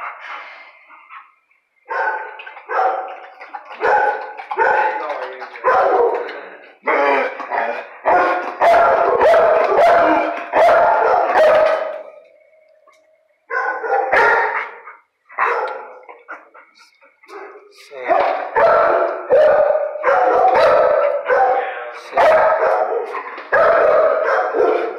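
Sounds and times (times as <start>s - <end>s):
dogs barking: 1.0s - 12.3s, 13.5s - 24.9s.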